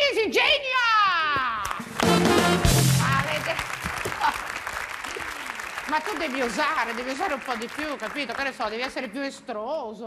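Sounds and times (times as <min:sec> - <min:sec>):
audience applauding: 0:01.6 - 0:09.1.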